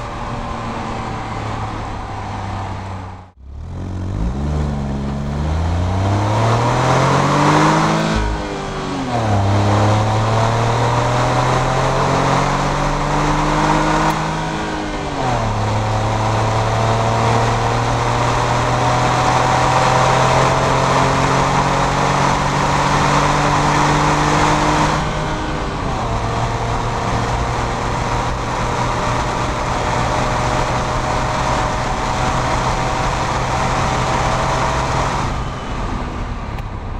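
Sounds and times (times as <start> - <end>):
car engine accelerating through gears: 0.0 - 36.9.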